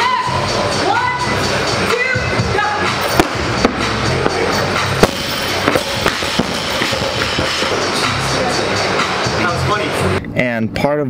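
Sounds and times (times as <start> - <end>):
music with a steady beat: 0.0 - 10.2.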